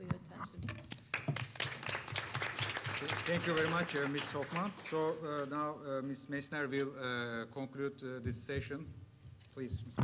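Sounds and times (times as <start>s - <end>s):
audience applauding: 1.1s - 5.6s.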